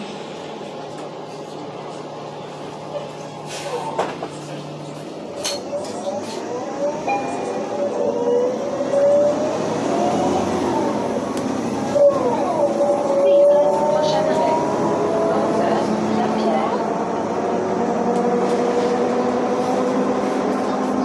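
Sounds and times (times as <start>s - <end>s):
bus engine and drivetrain whine: 0.0s - 21.0s.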